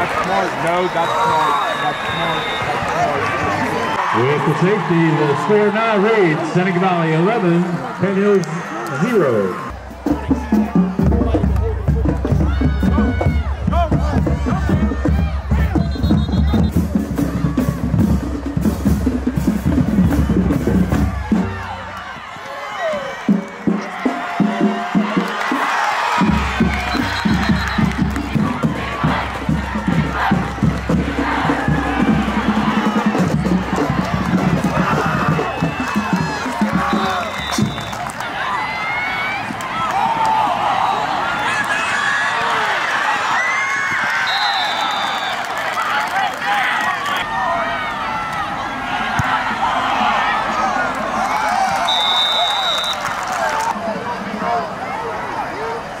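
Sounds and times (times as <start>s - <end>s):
stadium crowd cheering and shouting: 0.0s - 56.0s
high whistle tones: 0.9s - 2.9s, 15.8s - 16.8s, 26.8s - 28.0s, 36.8s - 38.1s, 44.2s - 45.5s, 51.8s - 53.1s.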